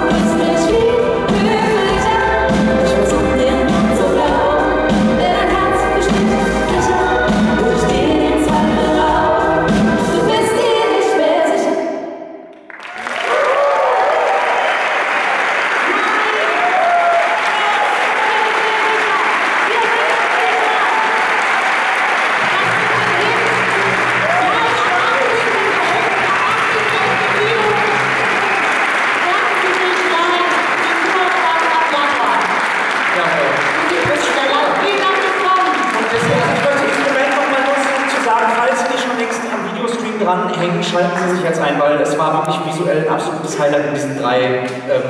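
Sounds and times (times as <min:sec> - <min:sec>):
audience clapping: 0:12.5 - 0:40.2
audience shouting and whooping: 0:12.8 - 0:29.6.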